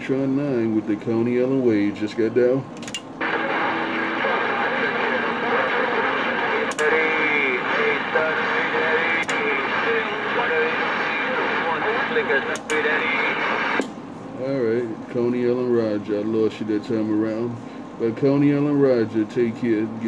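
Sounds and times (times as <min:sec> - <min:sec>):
faint broken radio voice: 0:03.2 - 0:13.8
radio static: 0:03.2 - 0:13.9
sharp clicks: 0:06.7 - 0:06.9, 0:12.5 - 0:12.8.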